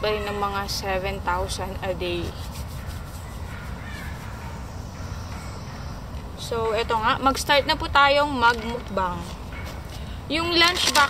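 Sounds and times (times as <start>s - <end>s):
crow cawing: 2.8s - 6.0s.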